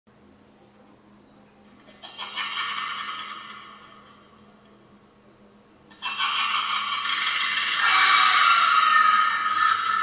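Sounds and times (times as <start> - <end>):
high harsh scare sound effect: 6.8 - 10.0.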